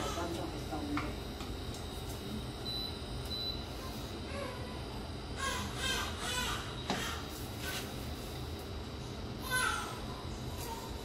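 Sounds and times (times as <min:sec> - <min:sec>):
induction hob humming: 0:00.0 - 0:11.0.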